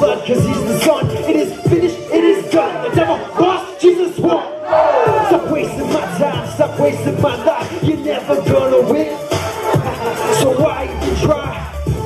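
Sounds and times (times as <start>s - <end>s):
hip-hop beat: 0.0s - 12.0s
loud shouted vocals: 2.2s - 8.8s.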